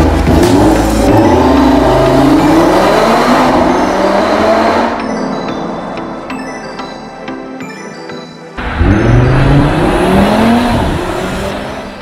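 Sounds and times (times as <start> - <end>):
car engine accelerating hard: 0.0 - 5.0, 8.6 - 12.0.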